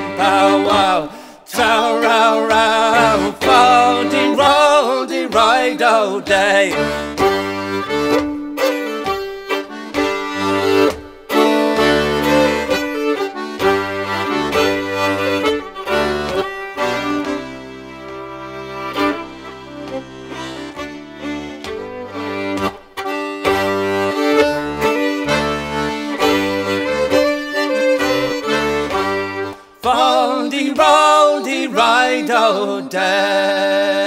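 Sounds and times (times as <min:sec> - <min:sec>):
fiddle playing: 0:00.0 - 0:30.5.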